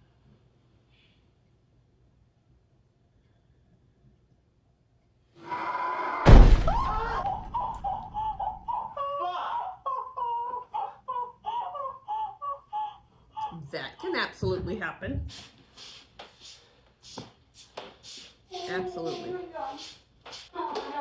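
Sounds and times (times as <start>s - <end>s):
woman screaming: 5.4s - 9.8s
loud thump: 6.2s - 8.7s.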